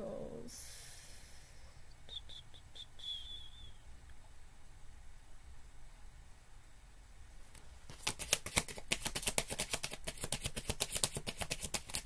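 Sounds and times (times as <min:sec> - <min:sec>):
bird chirping: 0:02.1 - 0:03.9.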